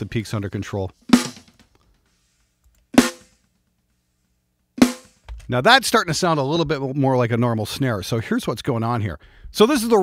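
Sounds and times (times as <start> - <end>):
rattly snare drum hit: 1.1 - 1.7, 3.0 - 3.4, 4.8 - 5.4.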